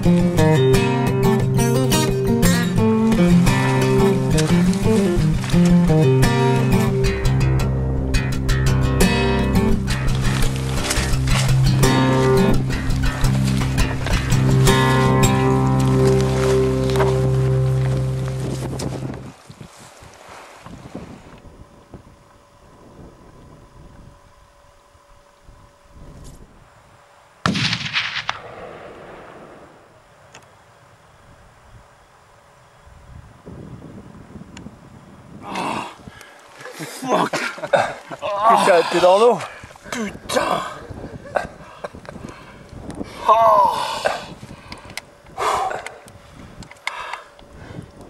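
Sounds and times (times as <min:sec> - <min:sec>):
rifle shot echoing: 0:27.4 - 0:30.3.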